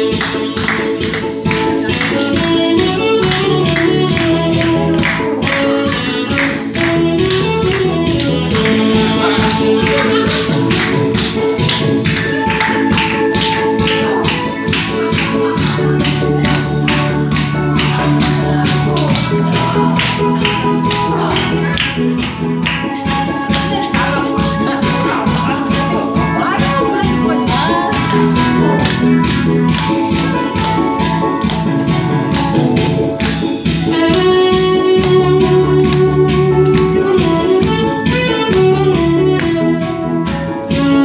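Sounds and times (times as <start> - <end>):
backing track with drum beat: 0.0 - 41.0
tenor saxophone: 1.5 - 10.7, 33.6 - 41.0
tenor saxophone melody: 1.5 - 41.0.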